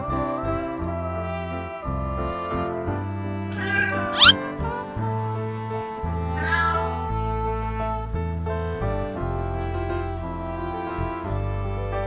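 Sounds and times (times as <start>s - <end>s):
background music: 0.0s - 12.0s
cat meowing: 3.6s - 4.4s
sharp upward sweep: 3.6s - 4.5s.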